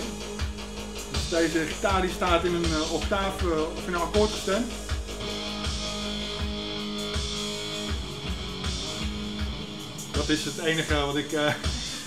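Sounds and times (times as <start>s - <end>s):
electronic drum beat: 0.0s - 12.0s.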